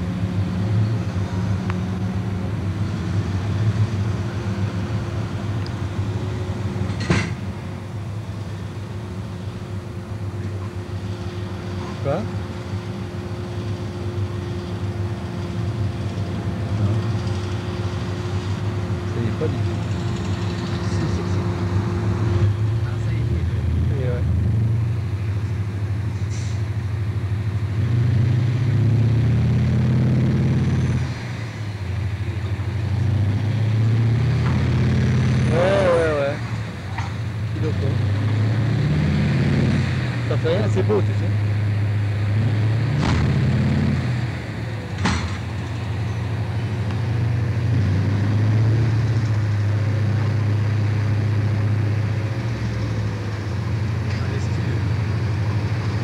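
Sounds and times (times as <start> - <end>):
diesel truck engine running: 0.0 - 56.0.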